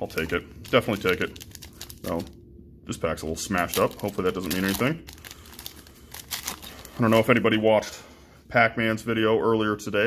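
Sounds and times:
foil wrapper crinkling: 0.0s - 2.4s, 3.6s - 7.4s.

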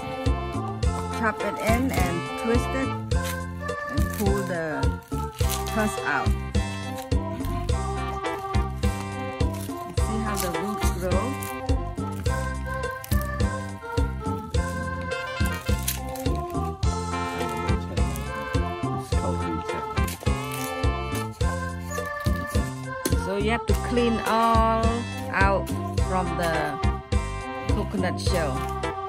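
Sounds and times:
background music with steady beat: 0.0s - 29.0s.

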